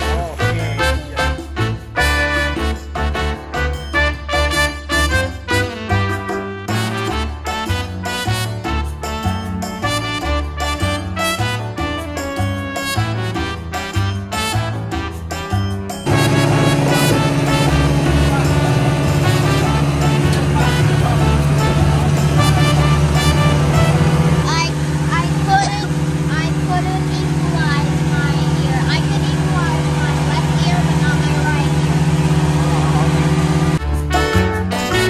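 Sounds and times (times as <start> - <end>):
people talking: 0.0 - 2.6, 16.1 - 33.7
outboard motor running: 0.0 - 35.0.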